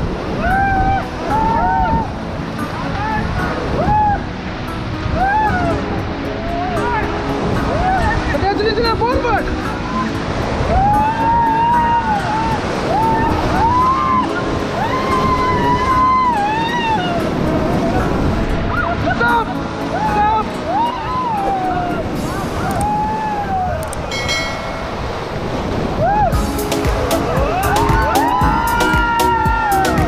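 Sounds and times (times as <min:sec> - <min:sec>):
white-water rapids rushing: 0:00.0 - 0:30.0
people yelling and whooping: 0:00.3 - 0:24.2, 0:25.8 - 0:26.5, 0:27.1 - 0:30.0.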